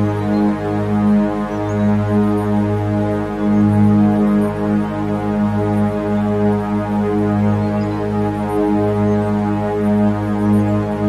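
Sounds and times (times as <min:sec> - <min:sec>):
meditation music drone: 0:00.0 - 0:11.0.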